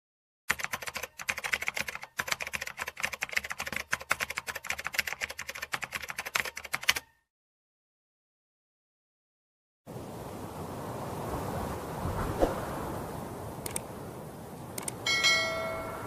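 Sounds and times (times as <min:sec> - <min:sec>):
rapid keyboard key clicks: 0:00.5 - 0:07.1.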